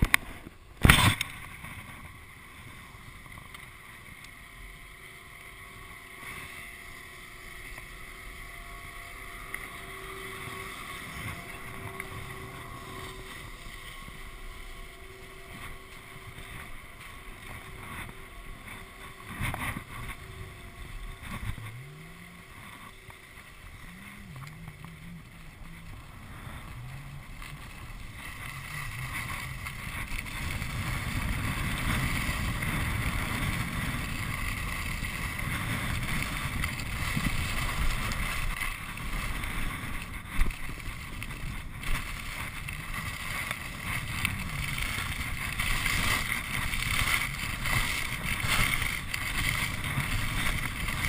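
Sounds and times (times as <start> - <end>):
skis sliding over packed snow: 0.0 - 51.0
wind buffeting microphone: 0.0 - 51.0.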